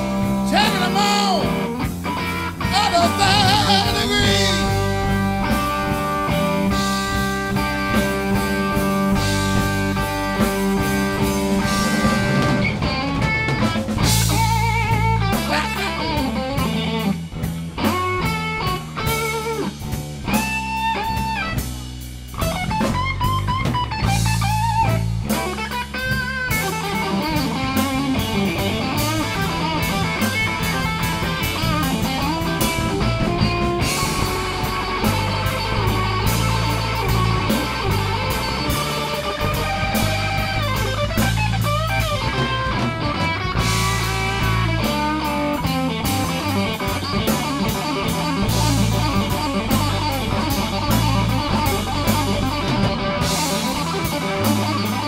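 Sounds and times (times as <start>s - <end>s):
bass guitar: 0.0s - 55.0s
drum kit: 0.0s - 55.0s
electric guitar: 0.0s - 55.0s.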